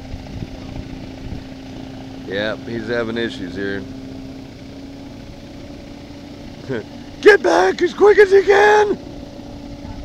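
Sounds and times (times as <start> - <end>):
distant hovercraft droning: 0.0 - 10.0.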